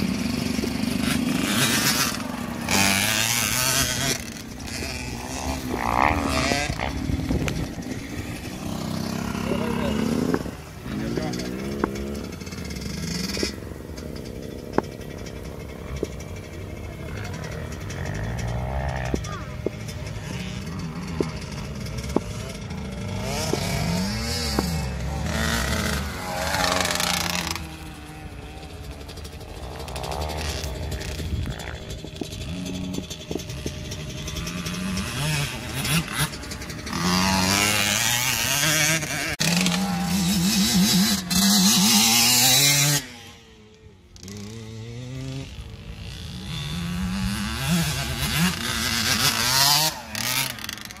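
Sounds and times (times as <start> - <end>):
gear shifting engines: 0.0 - 51.0
motocross bikes revving: 0.0 - 51.0.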